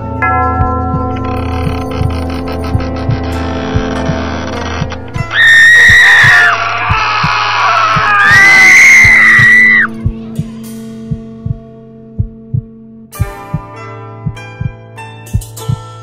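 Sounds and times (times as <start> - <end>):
low drone: 0.0 - 11.0
heartbeat-like thumping: 0.5 - 15.9
high screams: 5.2 - 9.9.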